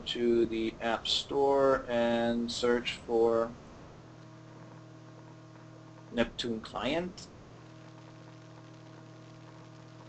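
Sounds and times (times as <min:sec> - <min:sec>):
background hiss: 0:00.0 - 0:10.0
faint electrical hum: 0:00.0 - 0:10.0.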